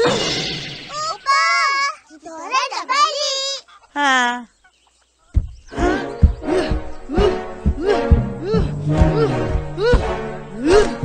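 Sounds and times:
background music with steady beat: 5.4s - 11.0s.

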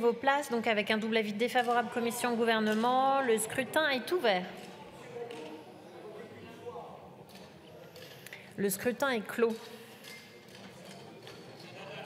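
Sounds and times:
faint murmur of voices: 1.7s - 8.8s.

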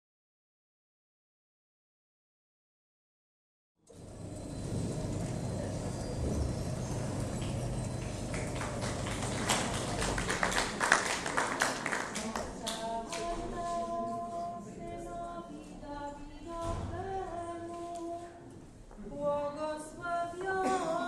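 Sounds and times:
murmur of voices: 5.0s - 21.0s.

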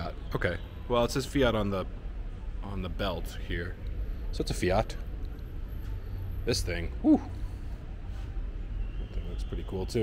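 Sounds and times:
man shouting woo: 7.0s - 7.4s.

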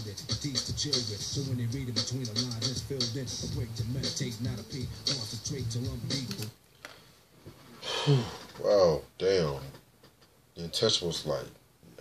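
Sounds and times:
rap song playing: 0.0s - 6.6s.

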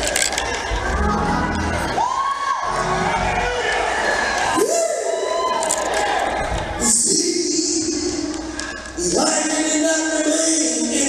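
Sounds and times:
congregation shouting and cheering: 0.0s - 11.0s
music: 0.8s - 3.7s.

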